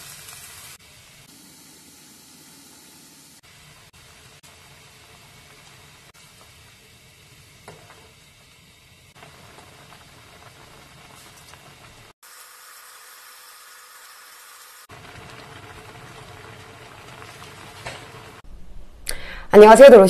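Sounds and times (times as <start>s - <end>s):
stew simmering and bubbling: 0.0s - 13.2s, 14.8s - 18.6s.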